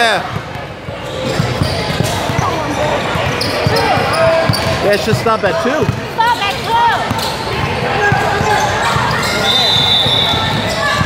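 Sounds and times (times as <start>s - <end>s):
spectators voices and calls: 0.0s - 11.0s.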